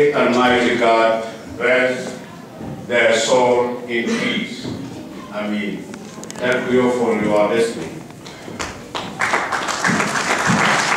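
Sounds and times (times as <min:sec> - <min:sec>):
audience applause: 0:08.2 - 0:10.9.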